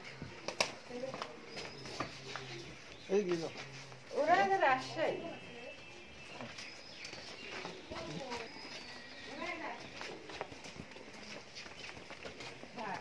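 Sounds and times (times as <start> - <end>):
cow hooves on hard floor: 0.0 - 13.0
faint voices: 0.0 - 13.0.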